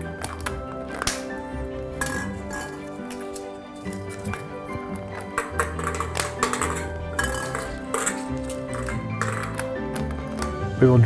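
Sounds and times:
instrumental background music: 0.0s - 11.0s
ball clinking against glass bowl: 0.2s - 10.7s.

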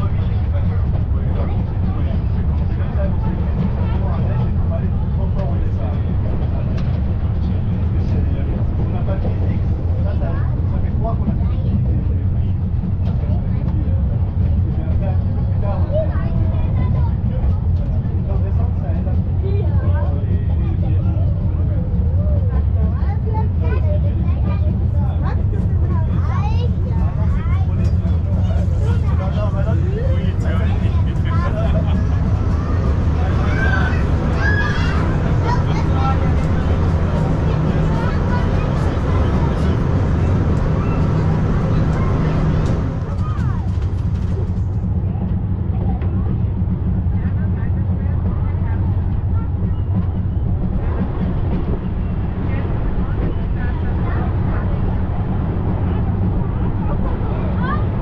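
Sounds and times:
passengers chattering: 0.0s - 58.0s
train rumbling in motion: 0.0s - 58.0s.

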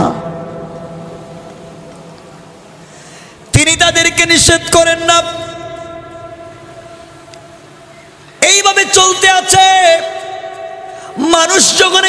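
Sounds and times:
reverberant voice tail: 2.7s - 12.0s.

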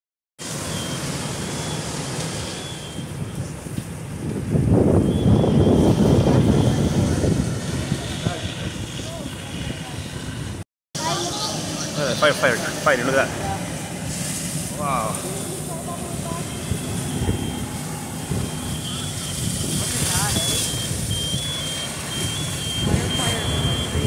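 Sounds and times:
hoses spraying: 0.4s - 4.5s, 11.0s - 24.0s
fire engines rumbling: 0.4s - 24.0s
thin high tone: 11.0s - 24.0s.

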